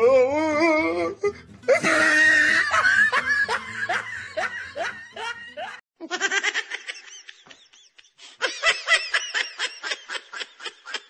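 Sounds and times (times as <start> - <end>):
person laughing in short bursts: 1.7 - 6.2.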